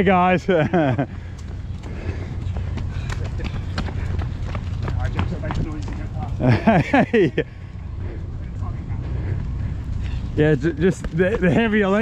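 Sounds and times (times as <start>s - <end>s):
running footsteps on concrete: 0.0s - 12.0s
wind rumble: 0.0s - 12.0s.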